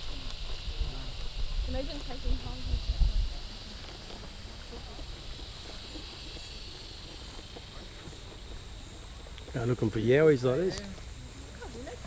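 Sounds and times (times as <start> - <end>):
insects droning high-pitched: 0.0 - 12.0.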